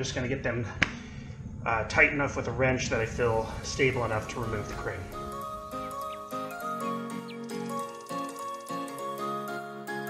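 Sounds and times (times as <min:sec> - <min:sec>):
melodic background music: 0:03.4 - 0:10.0.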